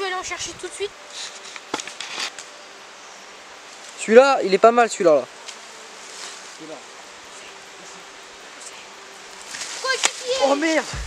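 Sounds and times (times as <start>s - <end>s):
sharp twig crack: 9.4s - 10.4s.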